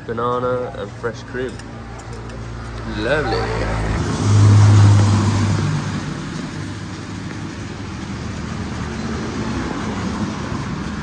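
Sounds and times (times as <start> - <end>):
vehicle road noise: 0.0 - 11.0.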